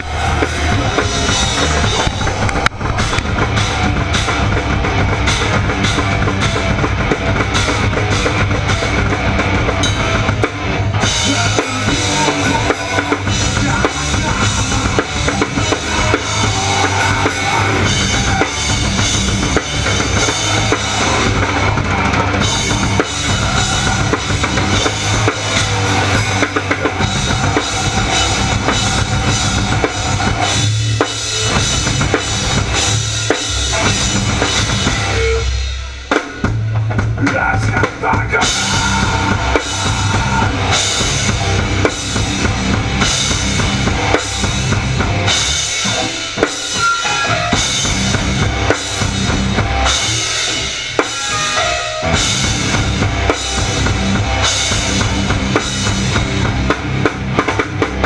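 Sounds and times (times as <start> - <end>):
drum kit: 0.0 - 58.0
live band playing loudly: 0.0 - 58.0.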